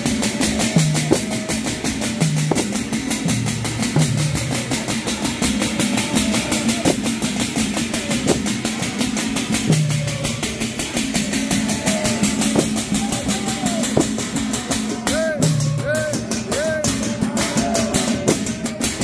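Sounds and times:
frame drums beaten fast: 0.0s - 19.0s.

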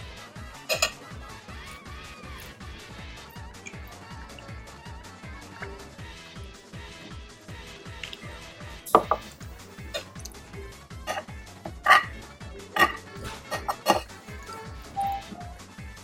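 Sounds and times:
background music with steady beat: 0.0s - 16.0s
spoon clinking on plate: 0.7s - 1.0s, 8.9s - 10.4s, 11.1s - 12.1s, 12.8s - 15.3s
mouth smacking while eating: 3.6s - 4.5s, 12.8s - 14.2s.

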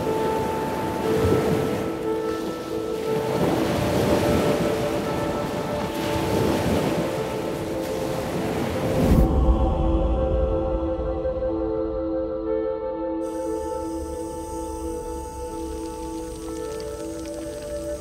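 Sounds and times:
ocean surf washing: 0.0s - 10.6s, 13.3s - 18.0s
ambient music drone: 0.0s - 18.0s.

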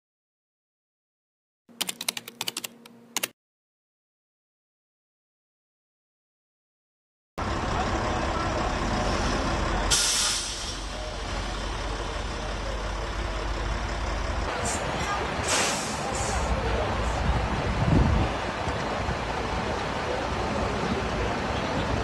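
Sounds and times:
fire engine rumble: 7.4s - 22.0s
short hissing bursts: 9.9s - 10.8s
background voices: 10.7s - 17.8s.

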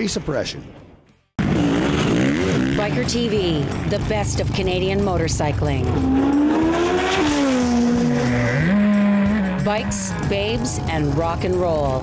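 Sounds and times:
motorcycle engines revving high: 1.4s - 12.0s.

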